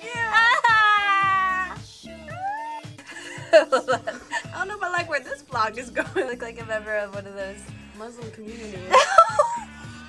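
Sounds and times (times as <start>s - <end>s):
woman wailing: 0.0s - 4.6s
background music with steady beat: 0.0s - 10.0s.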